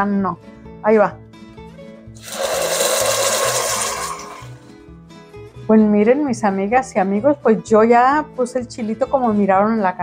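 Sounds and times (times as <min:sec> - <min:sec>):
sauce sizzling in hot oil: 0:02.2 - 0:04.7.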